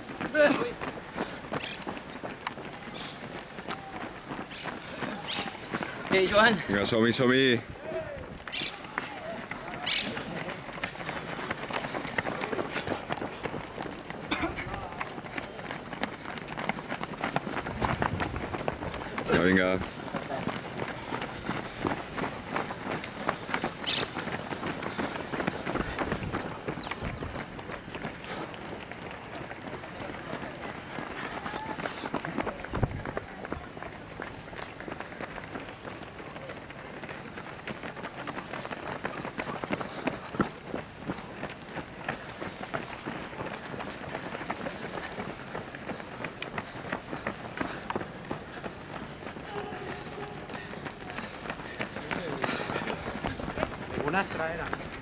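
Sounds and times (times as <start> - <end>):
runners' footsteps on asphalt: 0.0 - 55.0.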